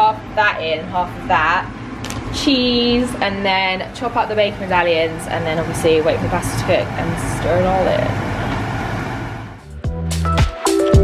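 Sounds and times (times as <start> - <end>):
background music with a beat: 9.6 - 11.0.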